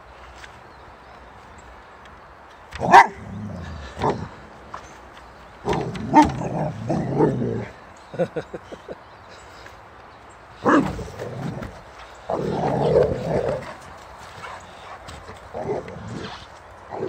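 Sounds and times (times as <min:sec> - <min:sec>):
dog barking: 0:02.8 - 0:03.2
dog grunting: 0:02.8 - 0:04.4.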